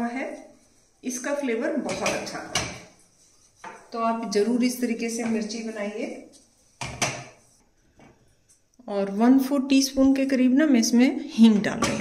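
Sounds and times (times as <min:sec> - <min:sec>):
spatula scraping a steel pan: 0:00.0 - 0:07.6.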